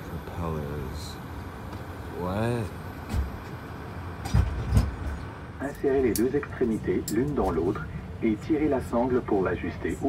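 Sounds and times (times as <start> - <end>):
low steady cabin rumble: 0.0 - 10.0.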